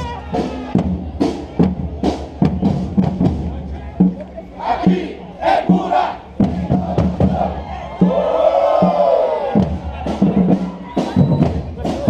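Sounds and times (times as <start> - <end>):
bass drum beats: 0.0 - 12.0
voices shouting in unison: 4.5 - 12.0.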